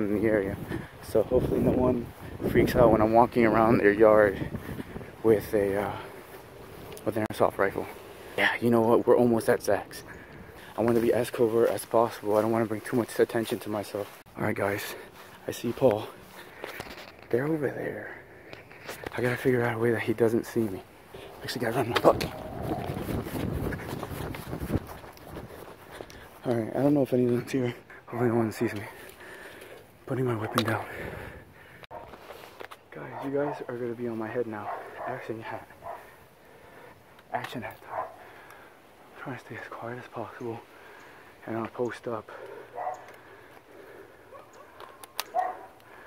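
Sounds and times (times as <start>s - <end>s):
footsteps running on grass: 0.0s - 8.0s, 10.5s - 17.2s, 20.3s - 27.5s
wind on microphone: 0.5s - 5.5s, 21.1s - 26.0s
dog yipping: 44.3s - 45.7s
sharp clicks: 44.8s - 45.4s.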